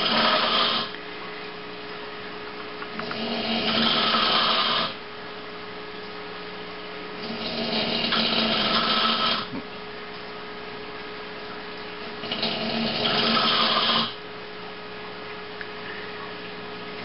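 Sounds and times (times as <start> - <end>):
man snoring loudly: 0.0 - 0.9, 3.1 - 5.0, 7.3 - 9.5, 12.2 - 14.2
steady low hum: 0.0 - 17.0.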